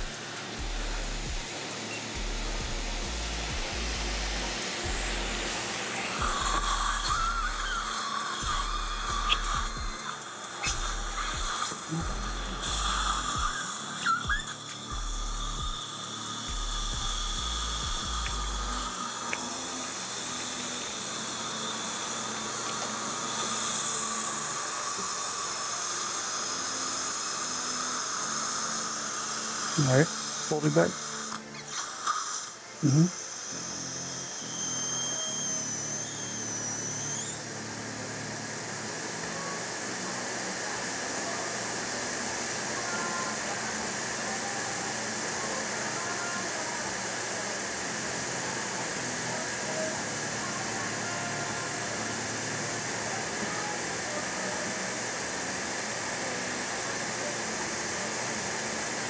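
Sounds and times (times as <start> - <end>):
dental drill whining: 0.0 - 59.0
dental suction hissing: 0.0 - 59.0.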